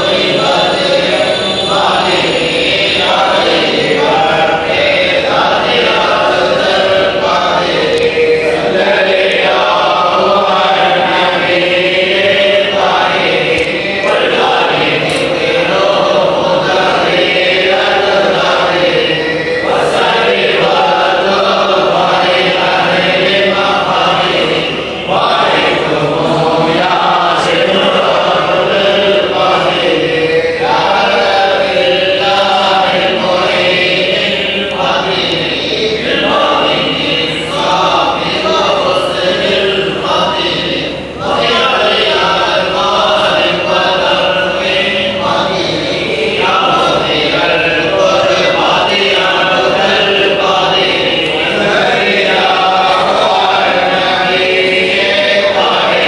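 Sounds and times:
men chanting together: 0.0s - 56.0s.

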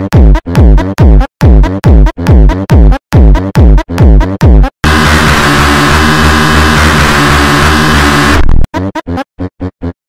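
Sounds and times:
short electronic beats: 0.0s - 8.9s
harsh synthesizer noise: 3.2s - 8.7s
steady low synth tones: 4.8s - 8.6s.

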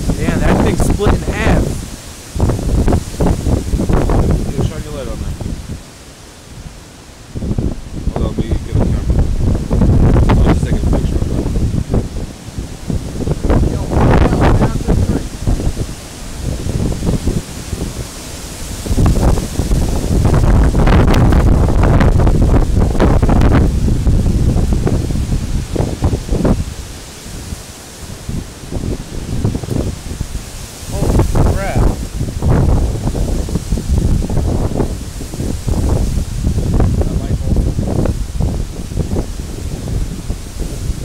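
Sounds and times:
leaves and branches rustling: 0.0s - 41.0s
wind gusting across microphone: 0.0s - 41.0s.

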